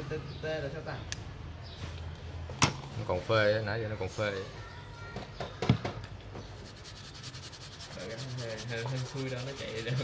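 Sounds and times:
brush scrubbing circuit board: 6.5s - 10.0s.

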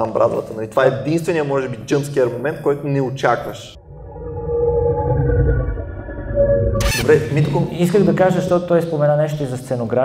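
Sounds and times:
synthesized tones held: 3.8s - 7.5s
deep rumble: 3.8s - 7.6s.

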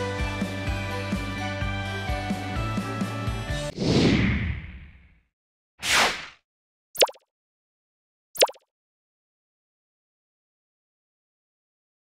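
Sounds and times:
pop sound effect with pitch sweep: 7.0s - 7.2s, 8.4s - 8.6s.

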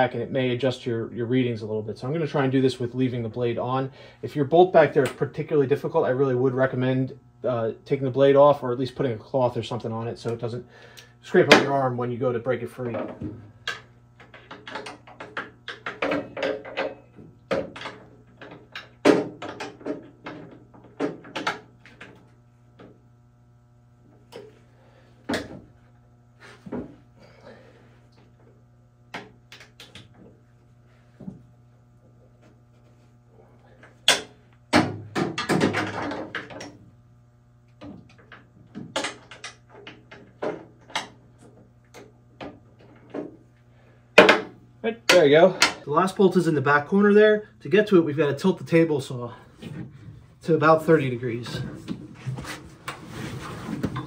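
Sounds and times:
steady low hum: 0.0s - 54.0s.

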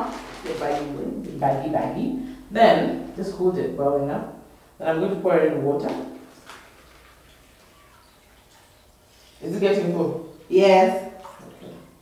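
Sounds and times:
water trickling into plastic bag: 0.0s - 3.3s, 5.7s - 12.0s.

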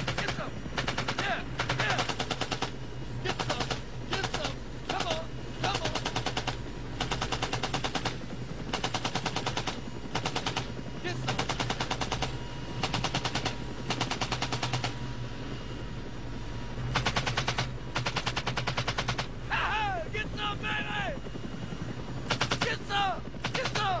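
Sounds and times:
machine gun bursts: 0.0s - 2.7s, 3.3s - 14.9s, 17.0s - 19.3s, 22.3s - 22.8s, 23.4s - 24.0s
helicopter drone: 0.0s - 24.0s
man shouting and laughing: 1.2s - 2.2s, 3.3s - 6.0s, 19.5s - 21.2s, 22.6s - 24.0s.

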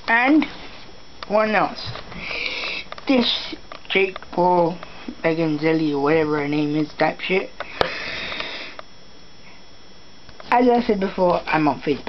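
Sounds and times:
breath close to microphone: 2.1s - 2.9s, 7.6s - 8.8s.

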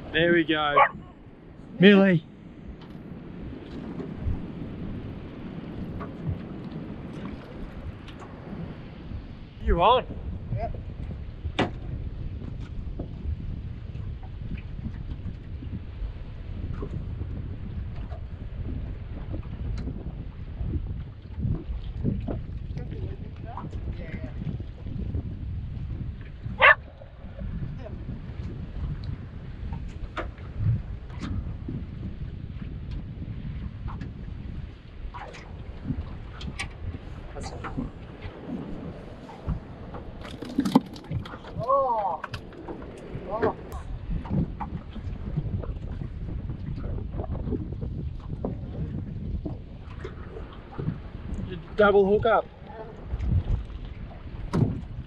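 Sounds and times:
wind and water rumble: 0.0s - 55.0s.

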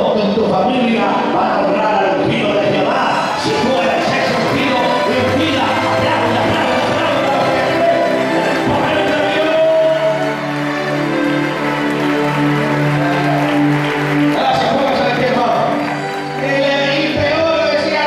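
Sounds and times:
many voices: 0.0s - 11.9s
worship music held notes: 0.0s - 18.0s.

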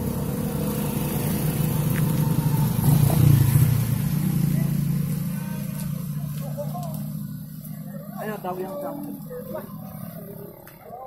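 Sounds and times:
people talking indistinctly: 4.3s - 11.0s.

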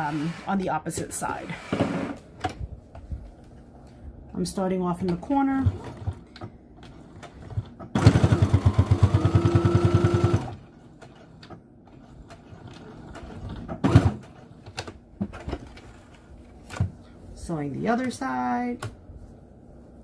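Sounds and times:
sewing machine stitching: 5.3s - 6.2s, 6.8s - 14.5s.

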